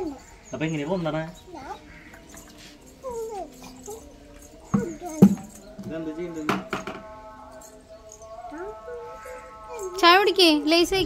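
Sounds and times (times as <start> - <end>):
dog whimpering: 1.4 - 4.2.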